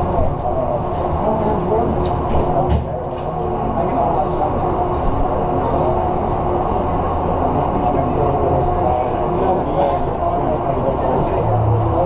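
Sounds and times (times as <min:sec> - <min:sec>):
faint voices: 0:00.0 - 0:12.0
loud low machine rumble: 0:00.0 - 0:12.0.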